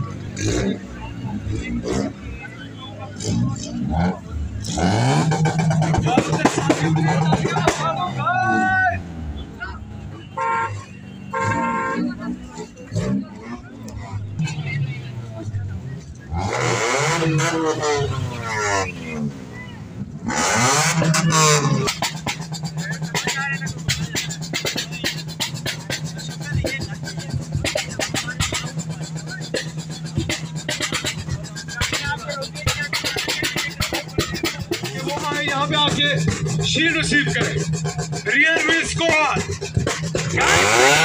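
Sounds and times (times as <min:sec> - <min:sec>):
car engine revving: 0:00.0 - 0:41.0
music with steady beat: 0:05.0 - 0:08.0, 0:20.7 - 0:41.0.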